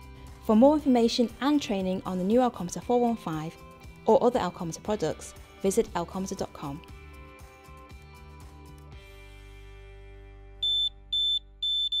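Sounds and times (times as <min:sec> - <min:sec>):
loud high electronic beeps: 0:10.6 - 0:12.0.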